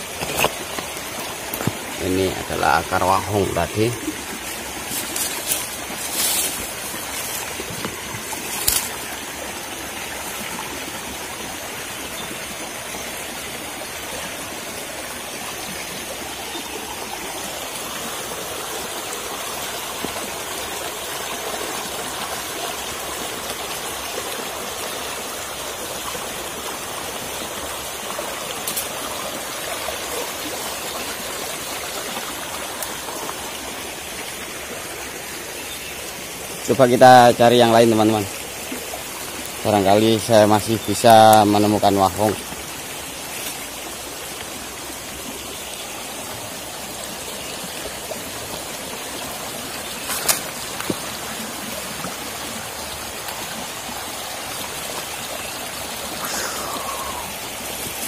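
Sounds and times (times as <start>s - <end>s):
stream running over rocks: 0.0s - 58.0s.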